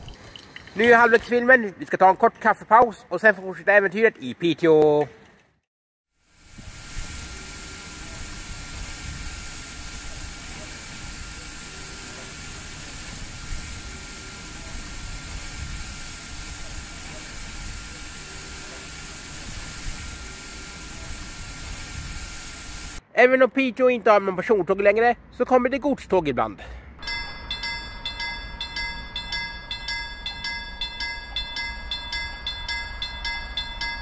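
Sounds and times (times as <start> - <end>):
outdoor hiss: 6.2 - 23.0.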